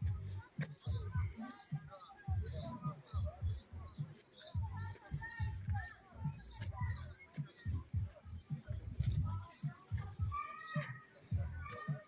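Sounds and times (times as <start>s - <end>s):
irregular low thuds: 0.0s - 12.0s.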